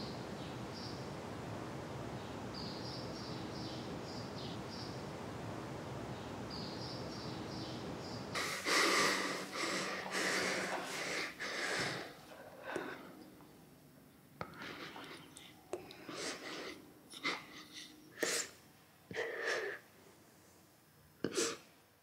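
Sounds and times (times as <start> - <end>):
faint bird chirps: 2.2 - 5.0, 6.1 - 8.4.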